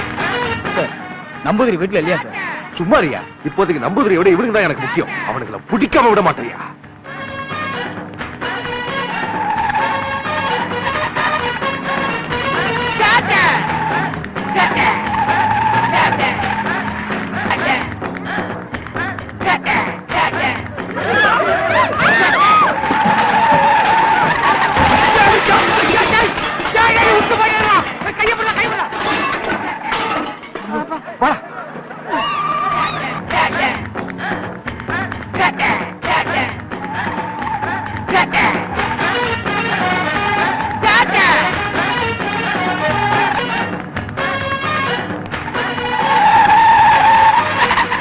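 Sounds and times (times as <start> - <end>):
tyres skidding screech: 6.5 - 17.6, 20.9 - 30.7, 32.0 - 33.2, 36.7 - 48.0
people shouting: 12.4 - 43.8, 45.4 - 48.0
metal pots clattering: 22.8 - 31.0.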